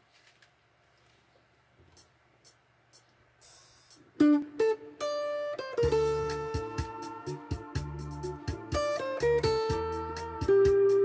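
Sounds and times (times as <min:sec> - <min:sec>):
high ticks: 0:01.9 - 0:04.0
electric guitar melody: 0:04.2 - 0:11.0
low accompaniment: 0:05.8 - 0:11.0.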